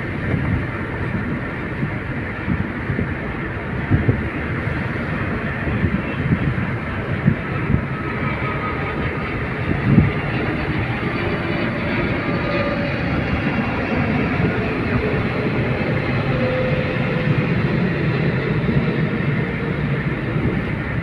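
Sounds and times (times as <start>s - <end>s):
car road and engine noise: 0.0s - 21.0s.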